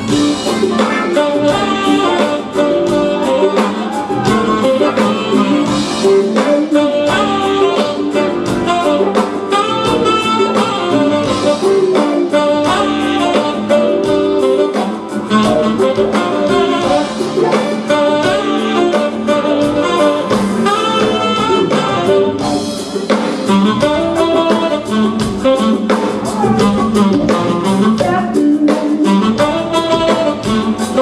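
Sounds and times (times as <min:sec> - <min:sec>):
saxophone melody: 0:00.0 - 0:31.0
smooth jazz band playing: 0:00.0 - 0:31.0.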